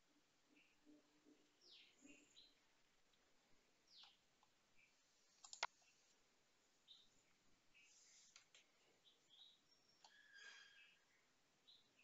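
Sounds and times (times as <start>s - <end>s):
faint high chirps: 8.9s - 12.0s.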